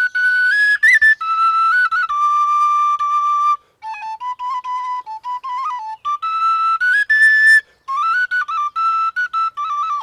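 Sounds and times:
wooden flute melody: 0.0s - 10.0s.

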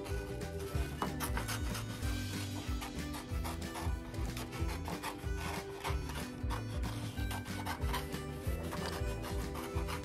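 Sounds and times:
background music: 0.0s - 10.0s
scissors cutting paper: 0.0s - 10.0s.

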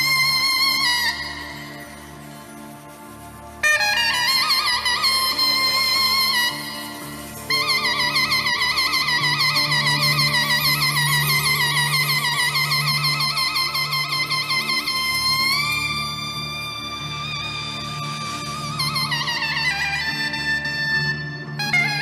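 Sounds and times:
low sustained accompaniment: 0.0s - 22.0s
reedy zurna melody: 0.0s - 22.0s.

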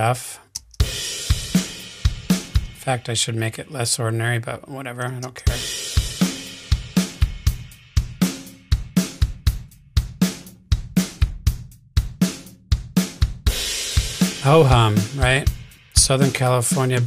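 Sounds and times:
drum beat: 0.6s - 3.0s, 5.4s - 17.0s.

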